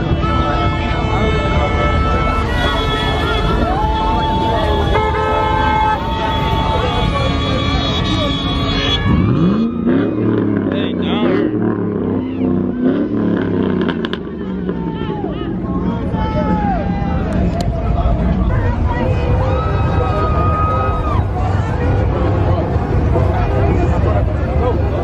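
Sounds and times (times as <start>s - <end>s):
car horns: 0.0s - 24.7s
car engines running: 0.0s - 25.0s
people shouting: 1.1s - 10.4s, 14.6s - 22.1s
engine revving: 6.7s - 19.4s.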